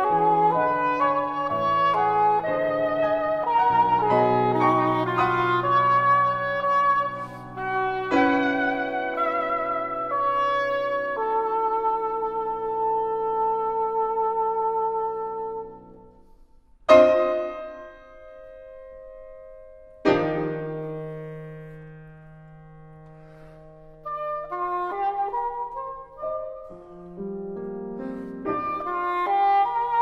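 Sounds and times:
english horn long notes: 0.0s - 16.0s, 24.0s - 27.2s, 28.0s - 30.0s
loud piano chords: 0.0s - 30.0s
piano playing: 0.0s - 30.0s.

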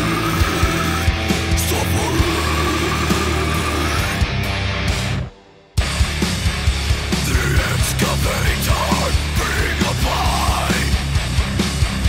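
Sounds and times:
distorted guitars and bass: 0.0s - 12.0s.

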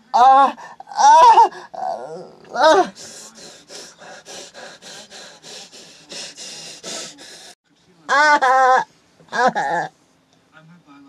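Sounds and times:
woman gasping for breath: 2.8s - 7.6s.

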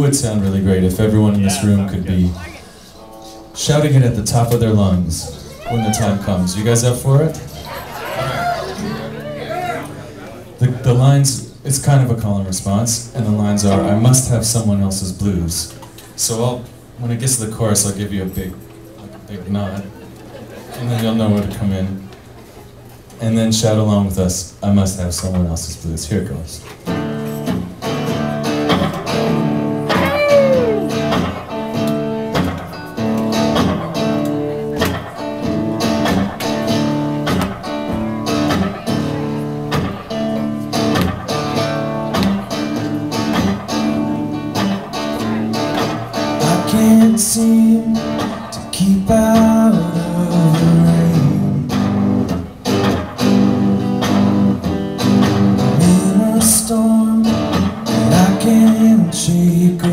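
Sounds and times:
folk-rock band playing: 0.0s - 23.2s, 26.6s - 59.9s.

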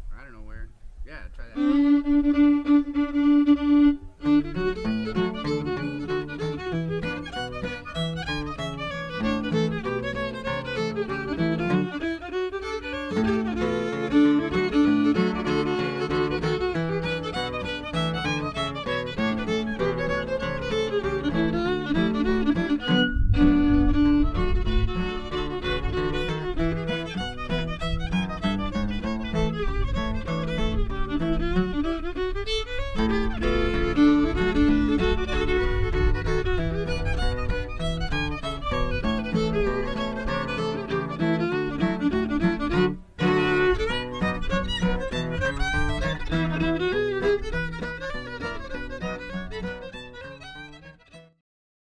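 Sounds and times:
fiddle tune: 0.2s - 51.4s
acoustic guitar accompaniment: 1.6s - 51.4s
wind rumble on microphone: 13.1s - 49.7s.

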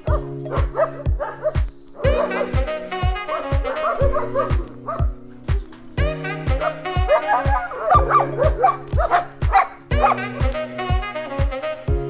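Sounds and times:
dog barking: 0.0s - 5.8s, 6.5s - 10.3s
background music with steady beat: 0.0s - 12.0s.

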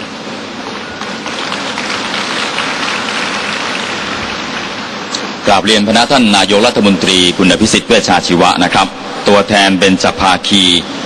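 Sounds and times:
heavy rain falling: 0.3s - 5.1s.

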